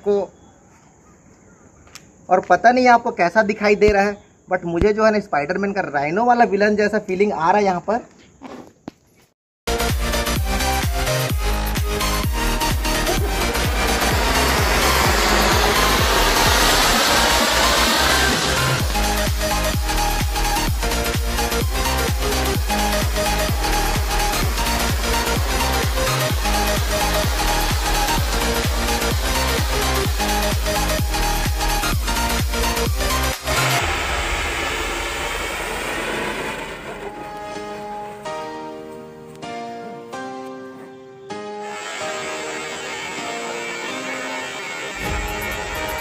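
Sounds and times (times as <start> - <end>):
electronic dance music: 9.7 - 35.3
fountain firework hissing: 10.1 - 37.9, 41.8 - 46.0.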